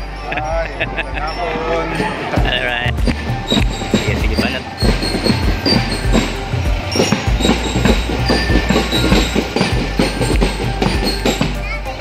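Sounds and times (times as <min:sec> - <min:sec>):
band music: 0:00.0 - 0:12.0
fast drum beat: 0:02.4 - 0:11.7.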